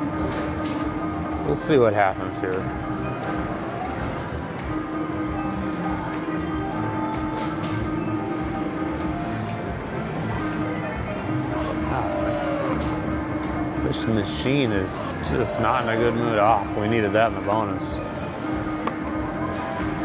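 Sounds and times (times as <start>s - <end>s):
slot machine reel-spin music: 0.0s - 20.0s.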